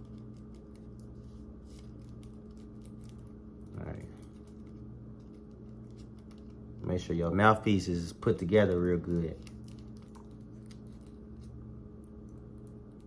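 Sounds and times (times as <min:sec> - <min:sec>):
paper crinkling: 0:00.0 - 0:06.9, 0:08.4 - 0:11.7
low hum: 0:00.0 - 0:13.0.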